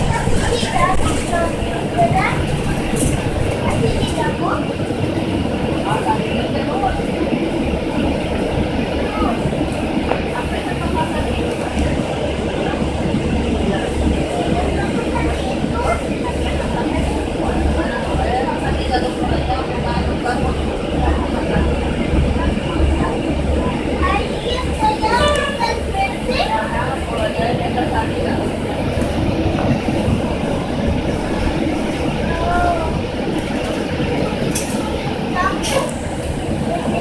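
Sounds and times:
bus engine and road rumble: 0.0s - 37.0s
passengers' voices: 0.0s - 37.0s.

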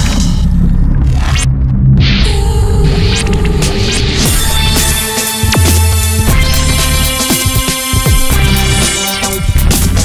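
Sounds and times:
deep bass drone: 0.0s - 7.3s, 8.0s - 10.0s.

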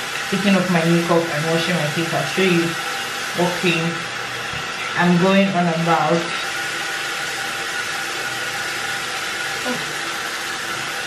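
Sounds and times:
tap running into sink: 4.3s - 5.0s.

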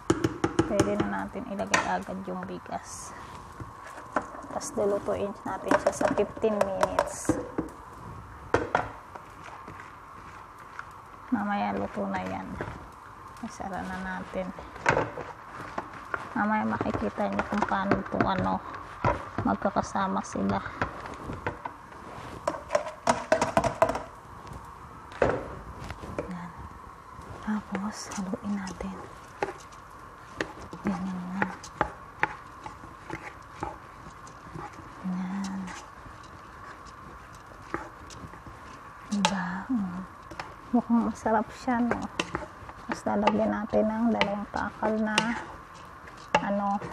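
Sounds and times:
low background noise: 0.0s - 46.9s
kitchen knocks and taps: 0.1s - 1.1s, 22.5s - 24.1s
wooden spatula scraping rice in pot: 0.7s - 7.8s, 8.5s - 24.0s, 27.2s - 46.9s.

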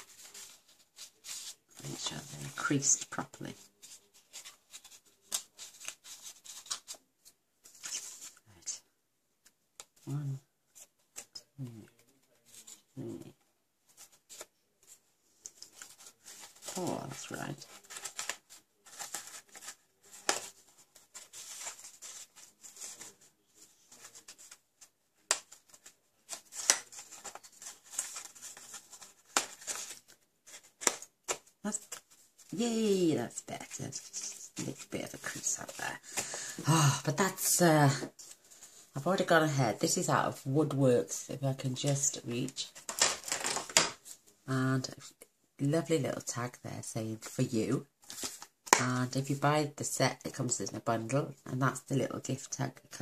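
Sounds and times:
paper rustling and scraping: 0.0s - 8.4s, 10.7s - 39.4s, 41.8s - 44.4s, 48.0s - 48.8s.

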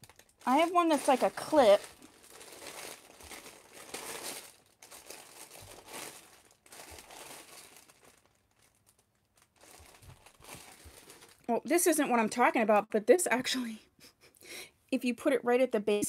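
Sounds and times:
faint rustling and crinkling: 0.0s - 12.3s.

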